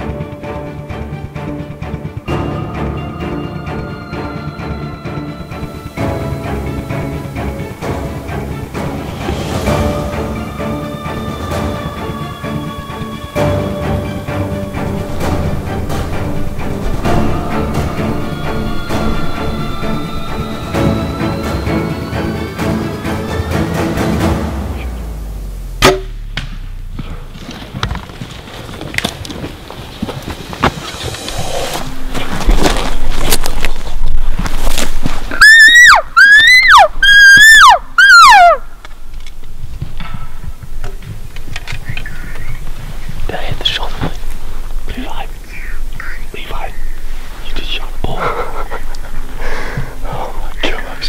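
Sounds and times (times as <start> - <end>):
rustling of brush: 27.0 - 35.4, 39.0 - 51.0
elk mews: 35.4 - 38.6
low whispering: 41.8 - 51.0.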